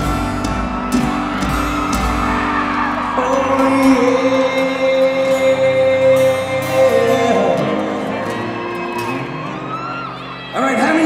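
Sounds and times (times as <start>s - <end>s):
acoustic guitar chords: 0.0s - 11.0s
acoustic rock band playing: 0.0s - 11.0s.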